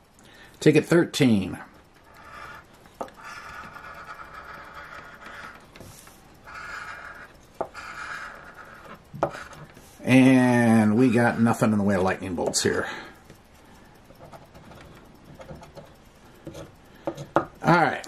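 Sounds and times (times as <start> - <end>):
coin scratching lottery ticket: 2.1 - 11.7
man talking: 10.0 - 13.1, 17.6 - 18.0.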